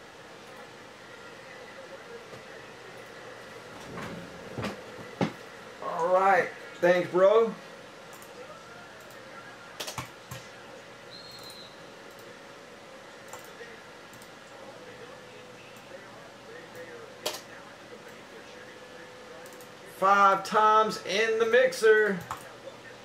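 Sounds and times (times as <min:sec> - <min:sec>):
steady low hum: 0:00.0 - 0:23.0
computer mouse clicks: 0:09.8 - 0:10.4, 0:13.3 - 0:14.3.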